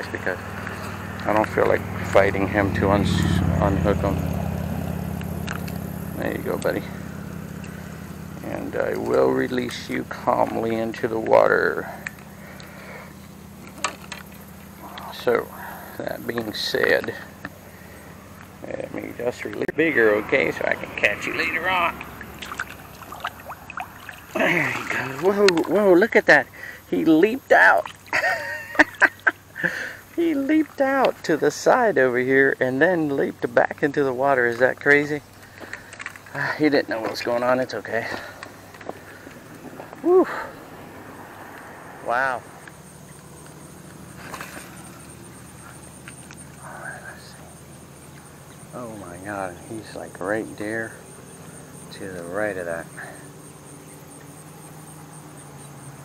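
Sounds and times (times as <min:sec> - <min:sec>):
high pulsing insect trill: 0:00.0 - 0:56.0
water trickling and gurgling: 0:00.0 - 0:56.0
small water plops: 0:04.1 - 0:18.6, 0:21.8 - 0:26.0, 0:27.6 - 0:31.2, 0:33.7 - 0:39.6, 0:42.6 - 0:46.6.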